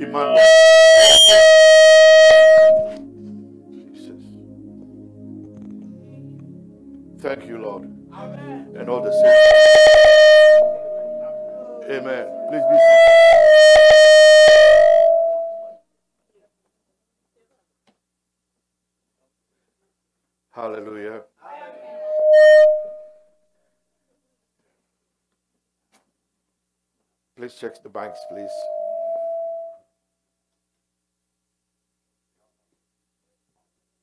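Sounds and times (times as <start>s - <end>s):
microphone feedback ringing tone: 0.0s - 3.0s, 7.6s - 15.8s, 21.7s - 23.2s, 28.0s - 29.8s
held musical note: 0.0s - 15.7s, 28.0s - 29.8s.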